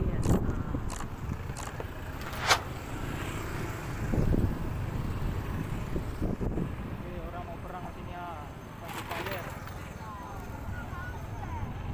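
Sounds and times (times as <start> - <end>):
scooter engine and road rumble: 0.0 - 11.9
wind on microphone: 3.9 - 7.0.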